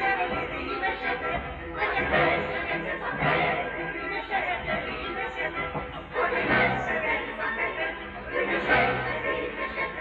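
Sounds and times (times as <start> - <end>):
many voices singing opera: 0.0 - 10.0.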